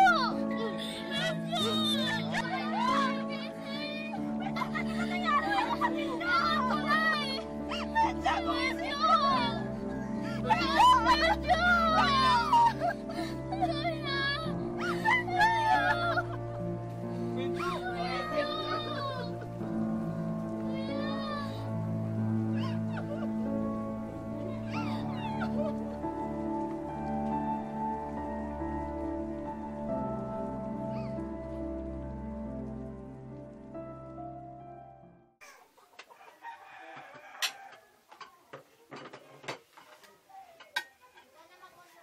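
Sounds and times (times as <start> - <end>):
children calling and chattering: 0.0 - 32.0
background music with held notes: 0.0 - 35.4
soft sustained chords score: 0.0 - 35.4
high-pitched wavering cries: 4.2 - 16.4.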